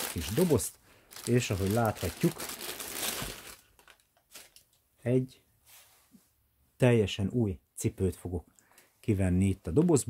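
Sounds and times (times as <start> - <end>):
tissue paper crinkling: 0.0 - 4.7.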